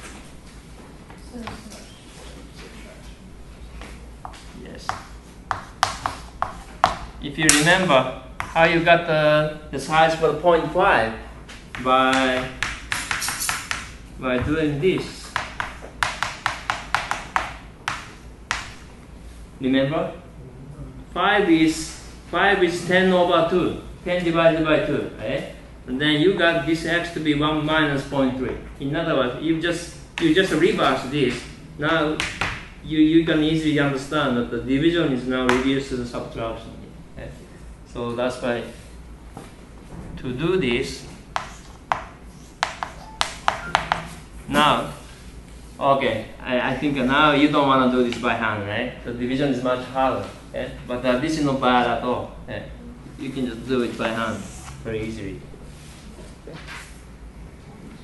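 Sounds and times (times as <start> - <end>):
chalk tapping on blackboard: 4.2 - 7.6, 11.5 - 18.8, 41.3 - 44.2.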